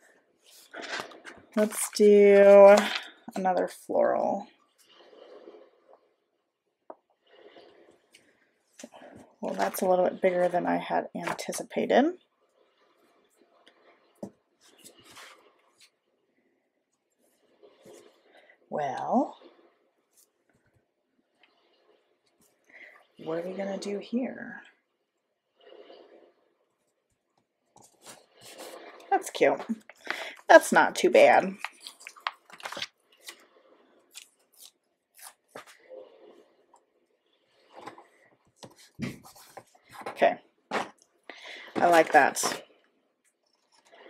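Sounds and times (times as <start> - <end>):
sticker paper rustling: 31.4 - 33.4, 38.6 - 40.8.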